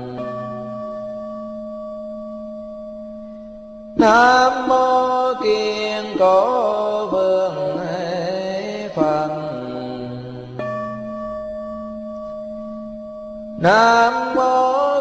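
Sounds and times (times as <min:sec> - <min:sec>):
person chanting: 0:00.0 - 0:01.0, 0:04.0 - 0:11.1, 0:13.6 - 0:15.0
steady ringing tone: 0:00.0 - 0:15.0.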